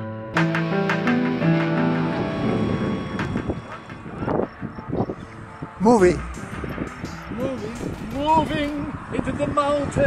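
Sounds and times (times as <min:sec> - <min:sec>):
guitar music: 0:00.0 - 0:09.2
road traffic: 0:00.4 - 0:10.0
wind on microphone: 0:02.2 - 0:10.0.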